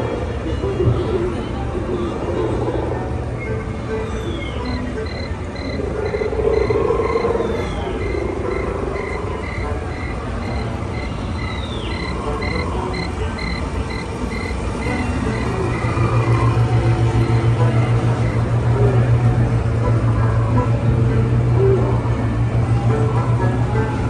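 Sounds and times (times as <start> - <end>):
low steady rumble: 0.0 - 24.0
falling chirps: 4.2 - 17.6
frogs croaking: 4.2 - 20.6
insects chirping: 4.6 - 18.5
pulsing low hum: 4.6 - 24.0.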